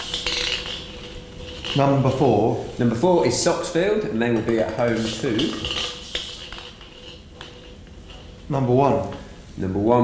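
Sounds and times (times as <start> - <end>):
balls clicking in metal bowl: 0.0 - 10.0.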